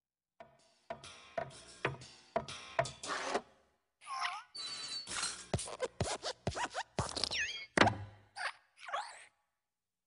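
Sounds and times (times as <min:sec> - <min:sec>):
squeaky springs: 0:04.5 - 0:07.8.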